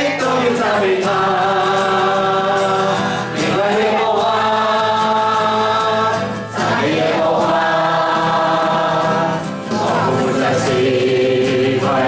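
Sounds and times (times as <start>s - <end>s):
acoustic guitar: 0.0s - 12.0s
group singing worship song: 0.0s - 12.0s
man's voice leading singing: 0.0s - 12.0s.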